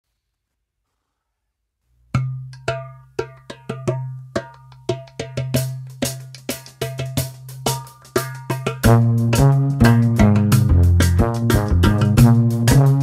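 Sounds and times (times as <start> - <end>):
metallic percussion hits: 6.3 - 13.0.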